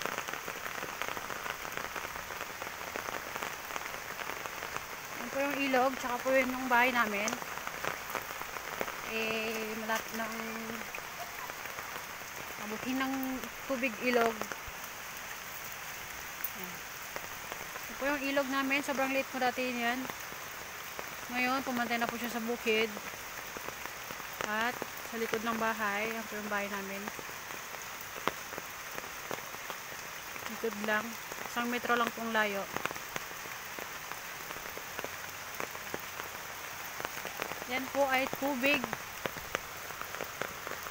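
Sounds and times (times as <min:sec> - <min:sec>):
rain on ground and foliage: 0:00.0 - 0:40.9.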